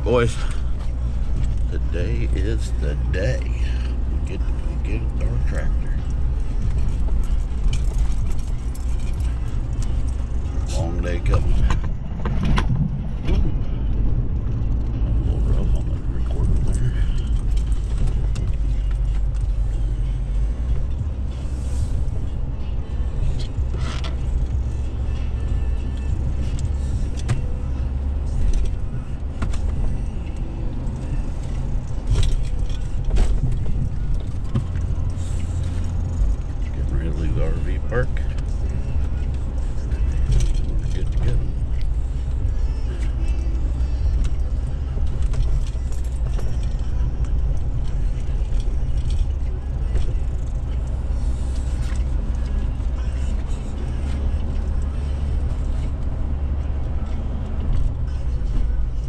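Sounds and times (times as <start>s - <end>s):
truck engine and road rumble: 0.0s - 59.0s
clicks and rattles in cab: 4.5s - 13.6s, 28.4s - 42.4s, 43.0s - 54.9s.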